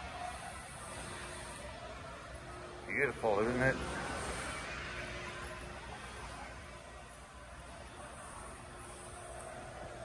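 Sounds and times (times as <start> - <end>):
indoor hall hum: 0.0 - 10.0.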